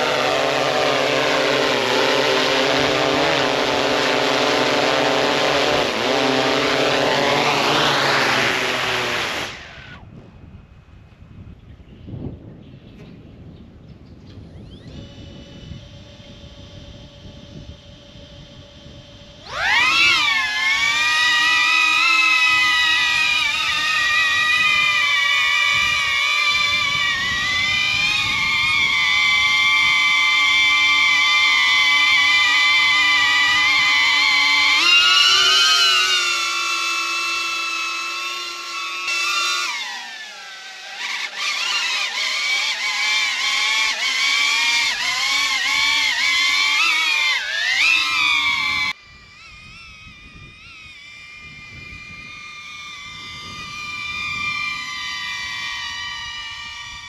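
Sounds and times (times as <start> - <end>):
drone propeller whine: 0.0 - 11.3, 13.7 - 57.0.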